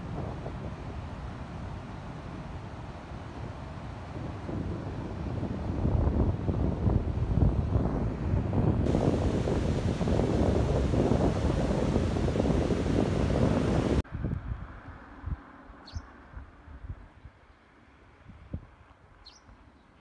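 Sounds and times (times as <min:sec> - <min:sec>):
wind buffeting microphone: 0:00.0 - 0:15.4
river rushing: 0:08.9 - 0:14.0.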